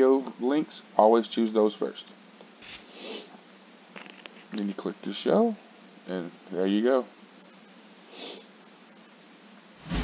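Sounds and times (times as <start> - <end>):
faint background hiss: 0.0 - 9.8
person sniffing: 2.9 - 3.3, 8.1 - 8.5.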